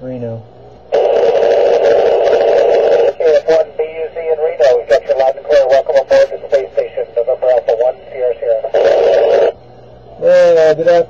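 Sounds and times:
radio static: 0.9s - 9.6s
man's voice over radio: 2.9s - 9.5s.

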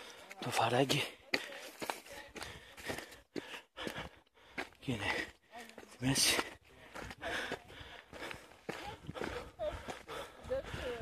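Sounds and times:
voices: 0.0s - 3.2s, 4.9s - 11.0s
footsteps on stony dirt trail: 0.0s - 11.0s.

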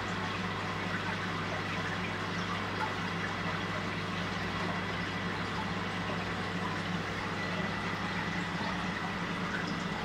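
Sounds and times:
aquarium pump hum: 0.0s - 10.0s
water fizzing and trickling: 0.0s - 10.0s.

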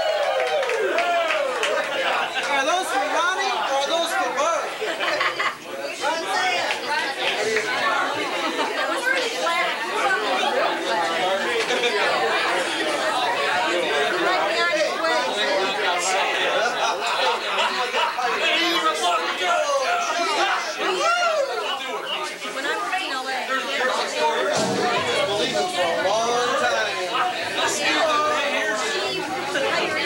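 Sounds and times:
people chatting in a room: 0.0s - 30.0s.

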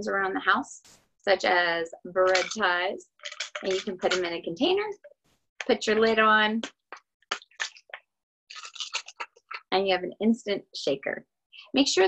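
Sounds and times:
plastic ties rattling in shaker: 2.3s - 4.3s.

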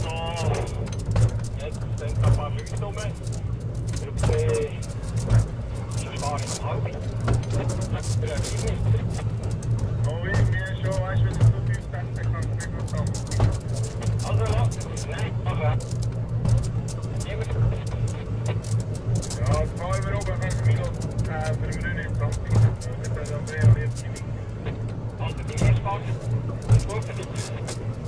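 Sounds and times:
people talking: 0.0s - 3.3s, 4.0s - 4.9s, 5.8s - 9.2s, 10.0s - 13.6s, 14.2s - 15.9s, 17.0s - 18.3s, 19.2s - 24.3s, 25.2s - 27.8s
funicular car humming and rumbling: 0.0s - 28.0s.

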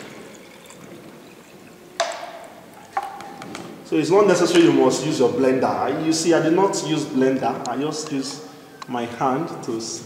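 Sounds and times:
liquid trickling into plastic jar: 0.0s - 3.5s.

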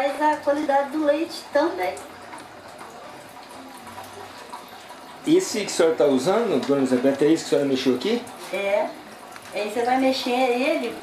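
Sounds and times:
whey trickling and dripping: 0.0s - 11.0s.

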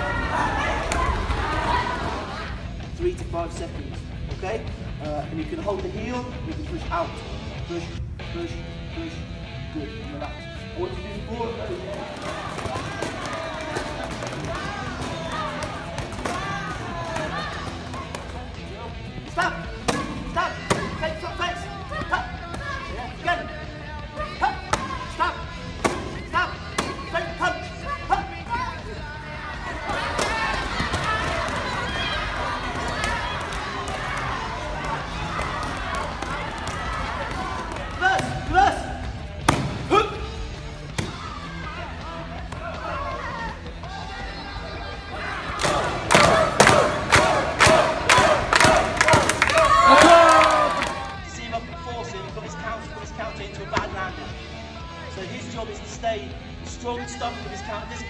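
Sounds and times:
hall chatter: 0.0s - 7.6s, 8.2s - 53.6s
background music: 0.0s - 58.0s
voices: 4.6s - 56.0s
kicks smacking kick paddles: 39.4s - 39.9s.

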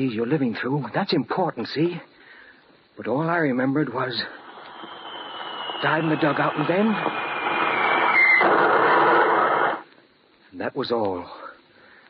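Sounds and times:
shell bursting: 4.0s - 9.8s.

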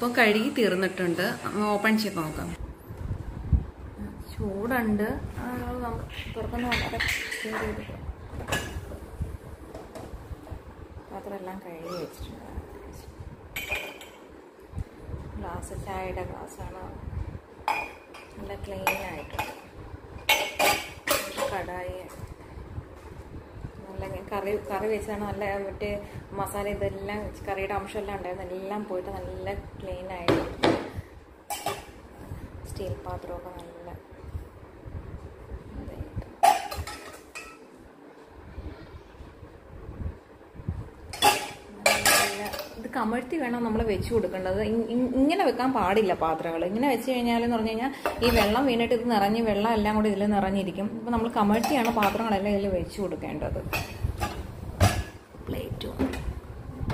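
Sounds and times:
dishes clinking: 6.6s - 9.0s, 13.6s - 14.3s, 17.6s - 21.6s, 31.5s - 32.0s, 36.4s - 37.7s, 41.1s - 42.8s, 51.5s - 52.4s, 53.7s - 55.2s
steel pots clanking: 17.7s - 21.6s, 31.5s - 32.0s, 36.4s - 37.7s, 41.1s - 42.8s.

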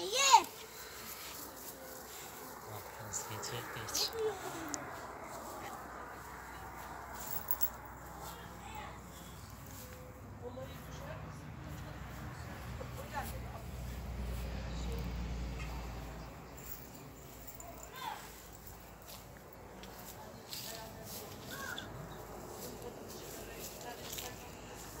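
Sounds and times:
faint voices: 0.0s - 25.0s.

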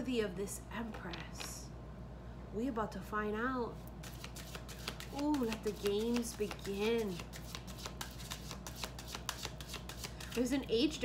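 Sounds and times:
cards being shuffled: 4.0s - 10.6s.

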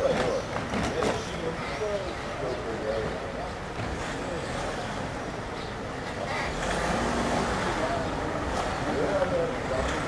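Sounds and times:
road noise: 0.0s - 10.0s
vehicle engines running: 0.0s - 10.0s.

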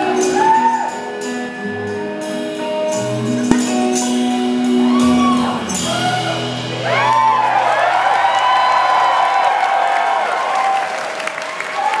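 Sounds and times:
audience applauding and cheering: 4.9s - 12.0s.

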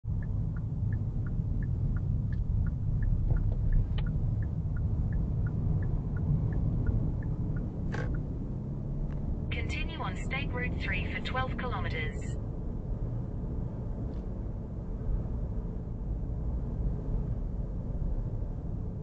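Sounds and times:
engine and tyre rumble: 0.0s - 19.0s
turn signal ticking: 0.1s - 12.0s.

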